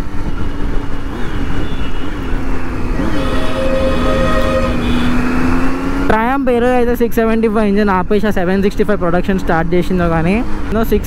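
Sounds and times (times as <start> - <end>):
motorcycle engine cruising: 0.0 - 6.2
steady high-pitched tone: 3.0 - 5.3.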